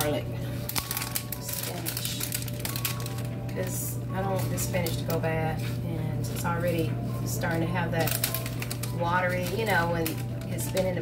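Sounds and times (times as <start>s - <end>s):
background music: 0.0s - 11.0s
plastic bag crinkling: 0.0s - 11.0s.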